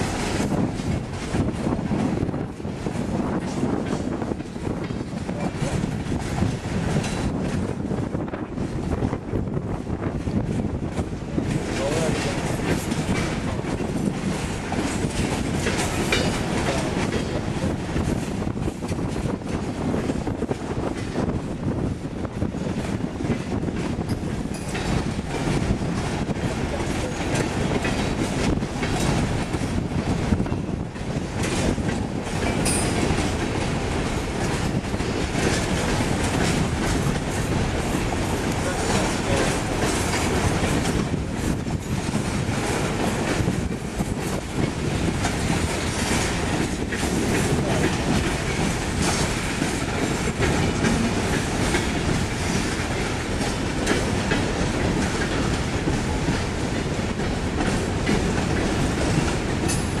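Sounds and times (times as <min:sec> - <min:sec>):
wheels clicking over rail joints: 0:00.0 - 0:08.8, 0:10.1 - 1:00.0.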